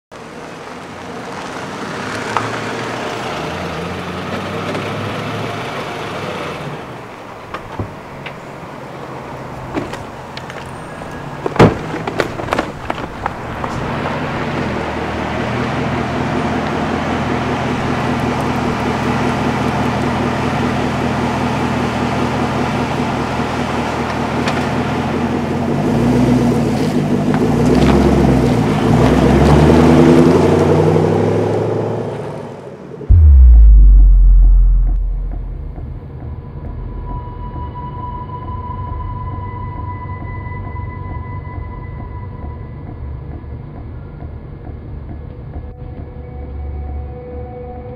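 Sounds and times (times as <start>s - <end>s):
road noise: 0.1s - 37.8s
car engine running: 33.1s - 36.2s
deep boom: 33.1s - 37.6s.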